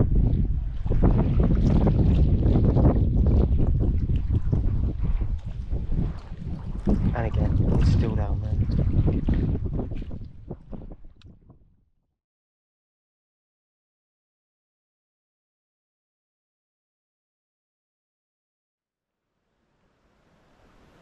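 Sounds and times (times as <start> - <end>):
strong wind buffeting microphone: 0.0 - 11.8.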